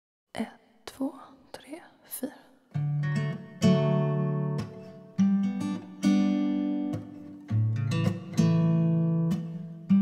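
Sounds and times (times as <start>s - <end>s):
person whispering: 0.4s - 2.5s.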